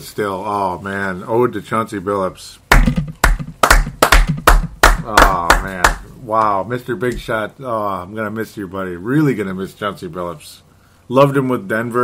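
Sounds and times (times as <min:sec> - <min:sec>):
hand claps: 0:02.7 - 0:06.0.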